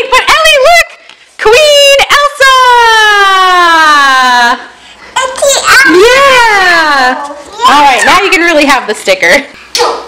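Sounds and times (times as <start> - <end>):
girl shrieking: 5.7 - 6.4.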